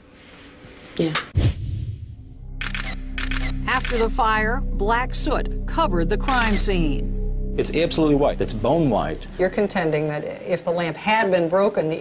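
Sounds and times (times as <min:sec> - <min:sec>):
deep boom: 0:01.4 - 0:10.2
low music drone: 0:02.3 - 0:10.5
camera shutter clicks: 0:02.6 - 0:04.0.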